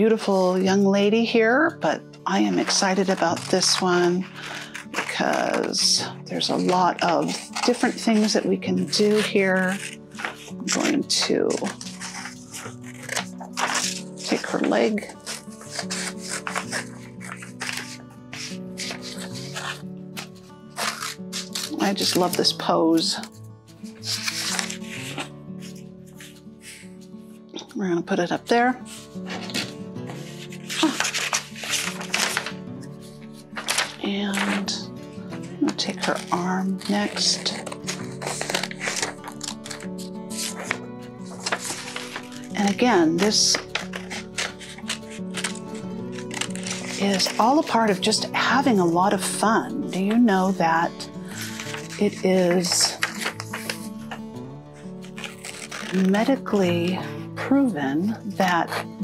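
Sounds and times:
scissors cutting paper: 0.0 - 59.0
soft background music: 0.0 - 59.0.

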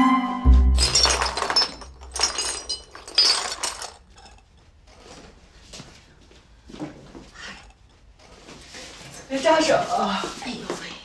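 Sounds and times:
crockery crashing and breaking: 0.6 - 4.4.

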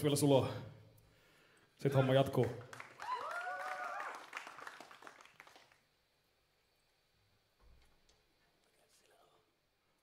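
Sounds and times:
audience applause: 2.4 - 5.9
person cheering: 2.9 - 4.5.

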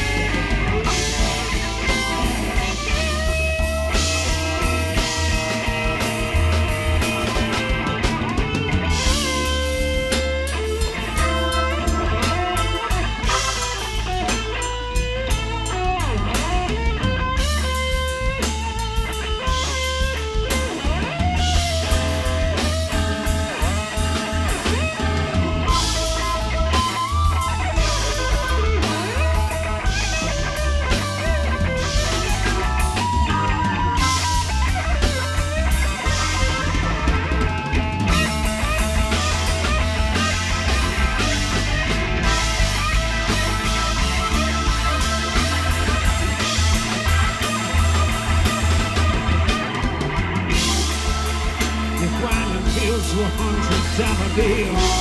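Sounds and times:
drum kit: 0.0 - 55.0
electric bass: 0.0 - 55.0
electric guitar solo: 0.0 - 55.0.

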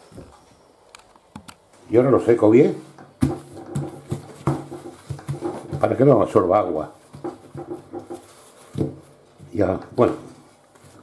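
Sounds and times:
paper towel crinkling and patting: 3.2 - 11.0.

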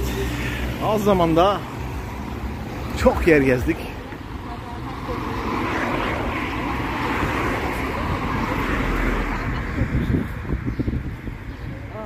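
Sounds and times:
passing motor traffic: 0.0 - 12.0.

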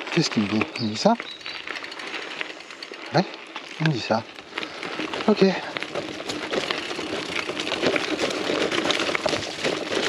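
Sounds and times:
bike tyres rolling on dirt: 0.0 - 10.0
rattle of small clicks: 0.3 - 9.6.

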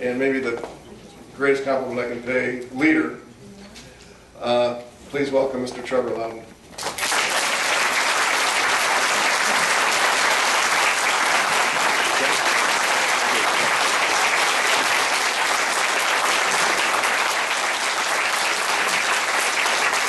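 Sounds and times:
audience applauding: 6.8 - 20.0.

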